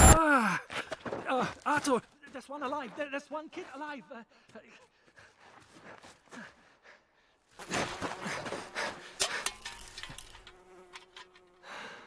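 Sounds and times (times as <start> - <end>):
flies buzzing: 7.6 - 12.0.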